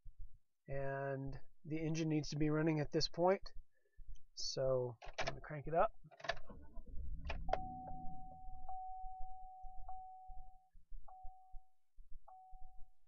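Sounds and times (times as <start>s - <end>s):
warning chime dinging: 7.4s - 11.6s.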